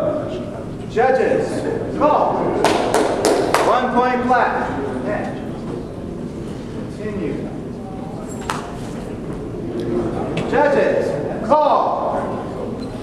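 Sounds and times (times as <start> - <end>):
voice in a large hall: 0.0 - 13.0.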